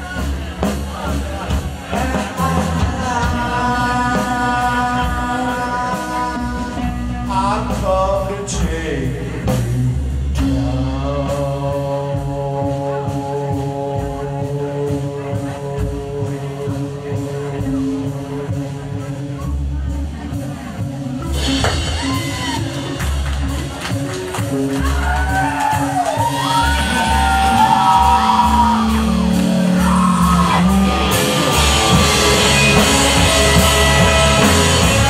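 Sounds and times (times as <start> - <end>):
rock band holding a note: 0.0 - 35.0
bending high guitar notes: 21.2 - 35.0.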